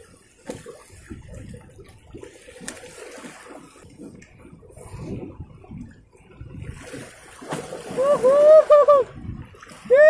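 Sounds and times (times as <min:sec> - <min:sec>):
waves washing over rocks: 0:06.4 - 0:10.0.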